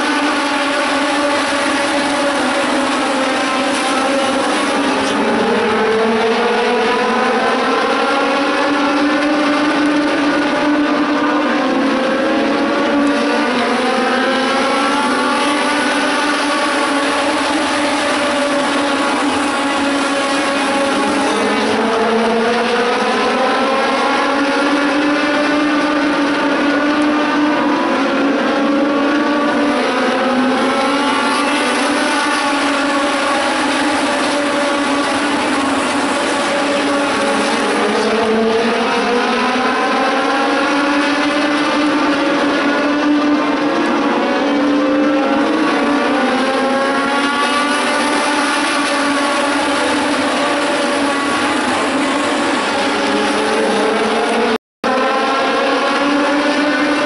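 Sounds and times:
race car engines at full speed: 0.0s - 57.0s.

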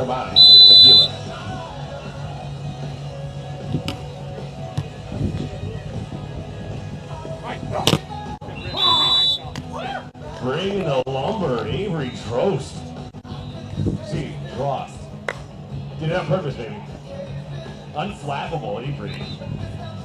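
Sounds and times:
background music: 0.0s - 20.0s
referee's whistle blasts: 0.3s - 1.2s, 8.6s - 9.5s.

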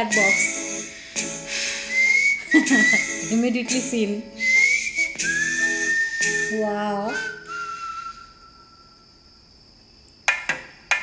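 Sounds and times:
whistled note: 0.0s - 3.5s, 4.4s - 9.0s.

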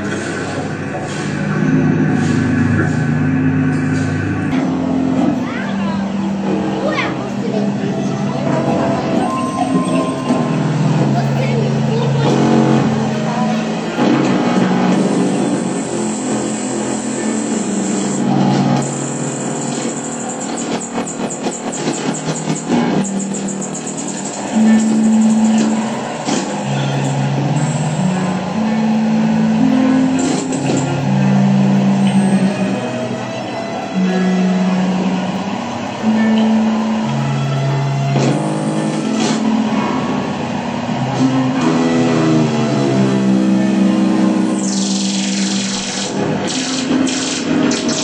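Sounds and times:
low electronic drone tones: 0.0s - 48.0s
rapid high clicks: 44.6s - 48.0s.

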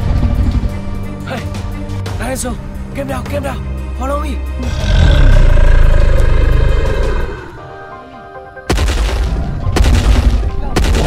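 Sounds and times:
dramatic background music: 0.0s - 11.0s
low dinosaur roar: 4.6s - 7.9s.

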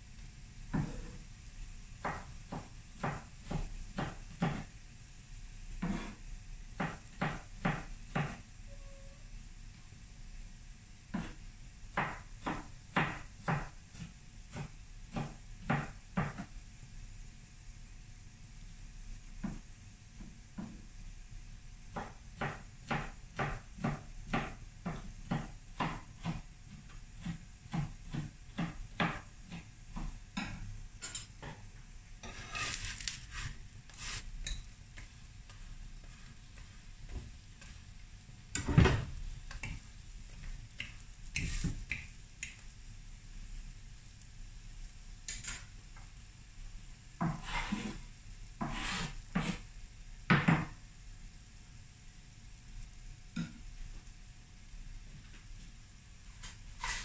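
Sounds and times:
faint sizzle of frying: 0.0s - 57.0s
metal utensils clinking on pan: 45.3s - 45.7s.

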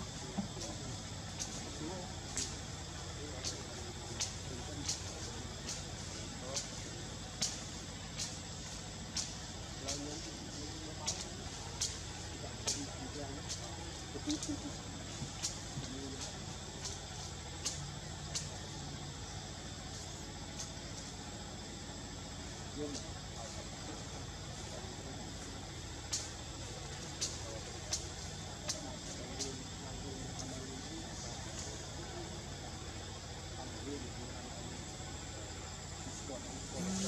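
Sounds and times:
faint indistinct voices: 0.0s - 37.0s
low steady rumble: 0.0s - 37.0s
sharp ticks: 0.4s - 21.2s, 24.2s - 32.4s.

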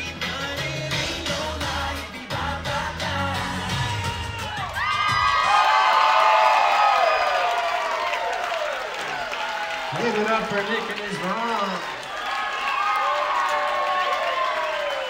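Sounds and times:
upbeat dance music: 0.0s - 5.5s
crowd cheering and screaming: 3.6s - 15.0s.

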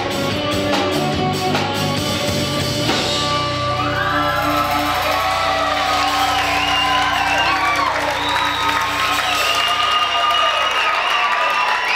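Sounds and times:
rock band chord ringing out: 0.0s - 10.6s
audience cheering and whooping: 3.5s - 11.9s.

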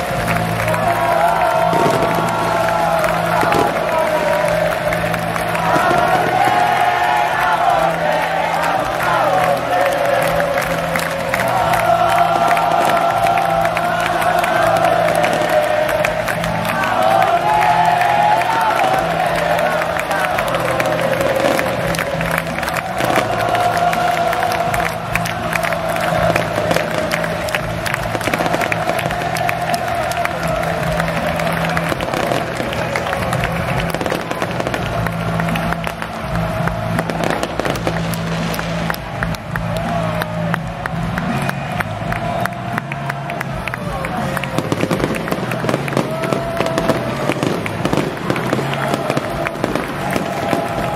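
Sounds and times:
fireworks crackling and popping: 0.0s - 6.8s, 18.4s - 39.4s, 44.5s - 50.9s
crowd singing and cheering: 0.0s - 50.9s.

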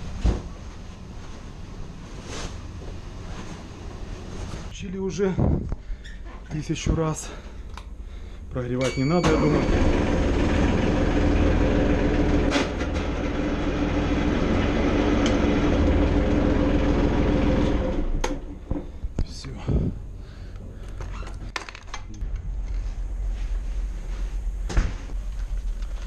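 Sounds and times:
diesel engine running: 9.4s - 18.2s.

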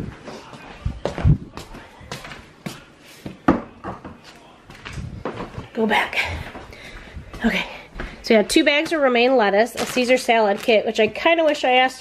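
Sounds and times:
footsteps on tiled floor: 0.0s - 12.0s.

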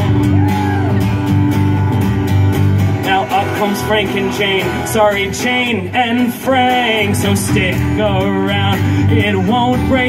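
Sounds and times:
bass guitar sustained low notes: 0.0s - 6.3s
acoustic guitar strumming: 0.0s - 10.0s.

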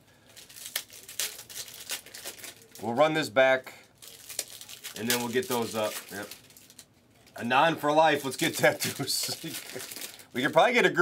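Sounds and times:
card pack wrappers crinkling: 0.2s - 3.0s, 3.8s - 10.9s.

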